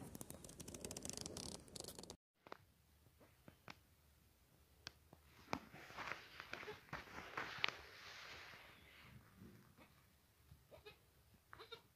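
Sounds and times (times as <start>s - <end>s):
goat kid bleating: 10.7s - 11.9s.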